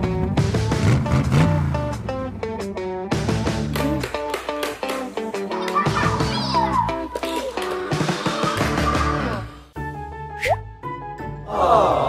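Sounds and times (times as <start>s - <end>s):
upbeat plucked and strummed music: 0.0s - 9.4s.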